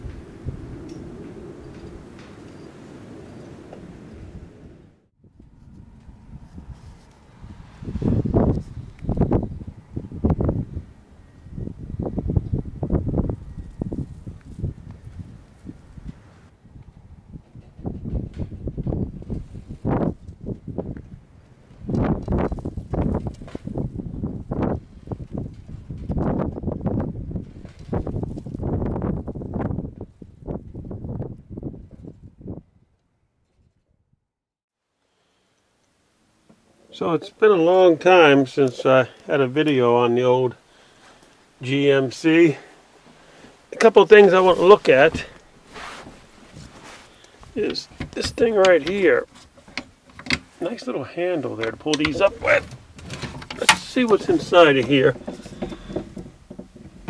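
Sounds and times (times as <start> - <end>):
wind gusts with rustling: 0.0 - 33.9, 35.5 - 57.0.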